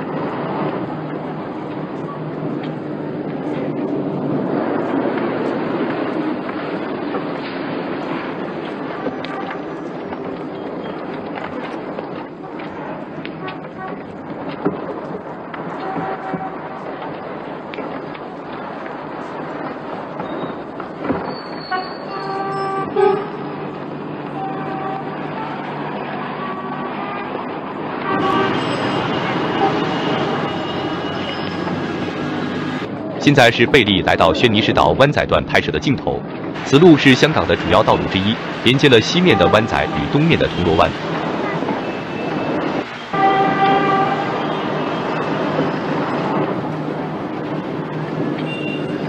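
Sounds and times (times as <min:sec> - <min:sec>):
street traffic: 0:00.0 - 0:49.0
vehicle horn: 0:15.8 - 0:16.7, 0:21.7 - 0:23.4, 0:24.4 - 0:25.7, 0:26.4 - 0:27.3, 0:28.0 - 0:31.5, 0:43.2 - 0:44.8
car horn toots: 0:28.1 - 0:28.9, 0:43.2 - 0:44.7.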